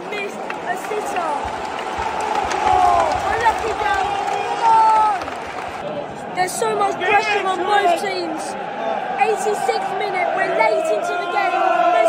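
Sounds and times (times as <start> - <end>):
stadium crowd shouting: 0.0 - 12.0.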